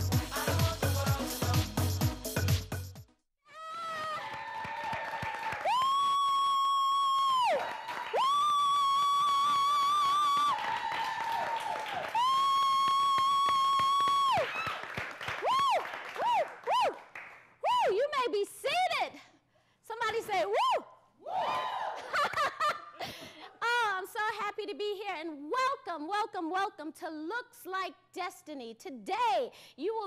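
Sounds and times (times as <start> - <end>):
short whoops: 3.5 - 14.8, 15.4 - 17.0
high held woo cheers: 3.5 - 18.0, 20.6 - 22.1
audience clapping and cheering: 3.6 - 17.6.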